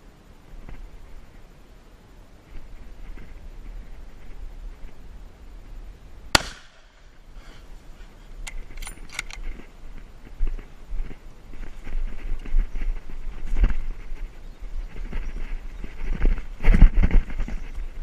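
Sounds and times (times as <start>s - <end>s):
rifle shot: 6.3s - 7.0s
rifle bolt clicking: 8.5s - 9.4s
footsteps through dry grass: 9.4s - 18.0s.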